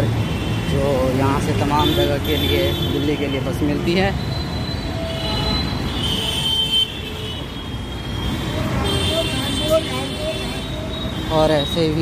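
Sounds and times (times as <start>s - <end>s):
traffic rumble of engines and tyres: 0.0s - 12.0s.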